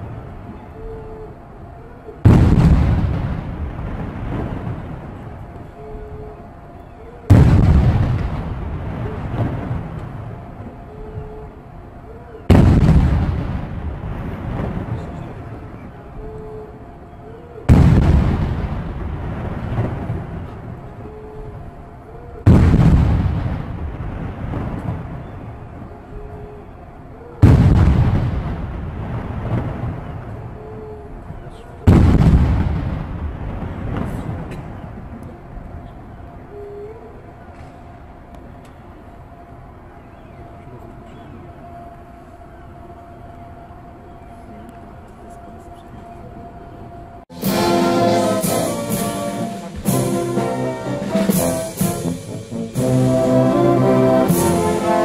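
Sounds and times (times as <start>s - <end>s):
echoing gun salute shots: 47.4s - 55.0s.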